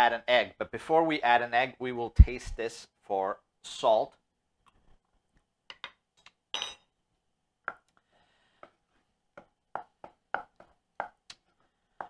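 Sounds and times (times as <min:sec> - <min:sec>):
wooden spoon knocking in pot: 0:09.4 - 0:11.2.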